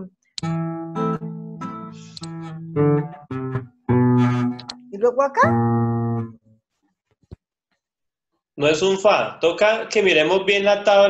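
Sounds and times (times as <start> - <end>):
guitar chord ringing: 2.4 - 4.6, 5.4 - 6.4.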